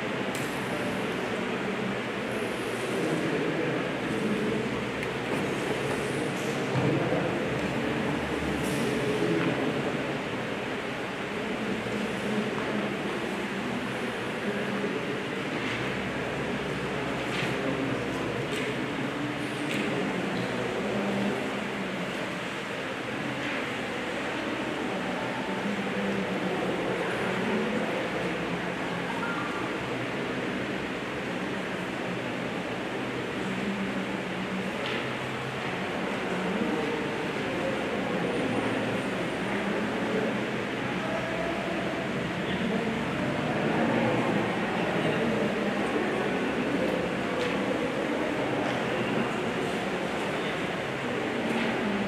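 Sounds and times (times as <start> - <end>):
faint low murmuring: 0.0 - 52.0.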